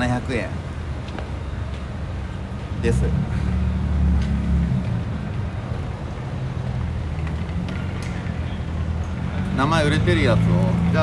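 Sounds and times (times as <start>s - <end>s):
street background rumble: 0.0s - 11.0s.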